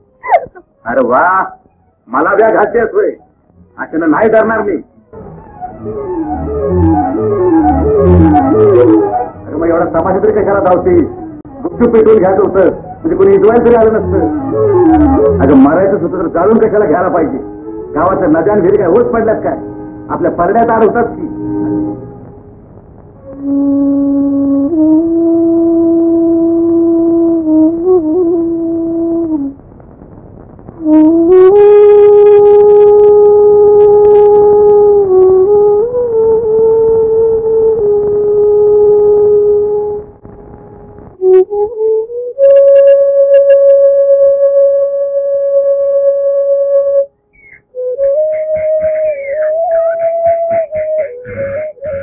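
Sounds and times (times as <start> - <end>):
sustained melodic film music note: 0.0 - 29.6, 30.8 - 52.0
high held music note: 5.0 - 24.3, 47.4 - 52.0.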